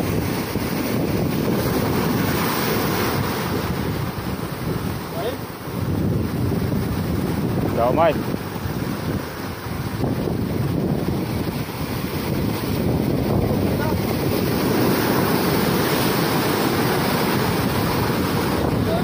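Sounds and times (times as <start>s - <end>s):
surf breaking over rocks: 0.0s - 19.0s
wind buffeting microphone: 0.0s - 19.0s.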